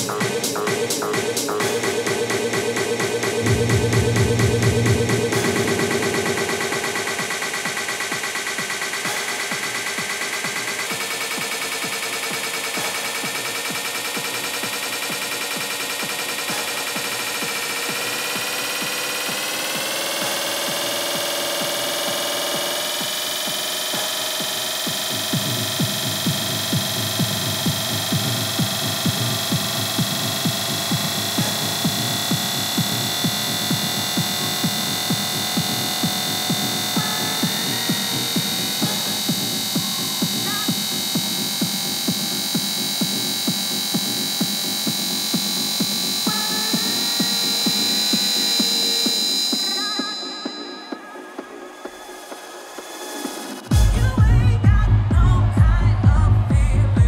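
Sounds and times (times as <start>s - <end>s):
held synth chords: 0.0s - 57.0s
steady kick drum beat: 0.0s - 57.0s.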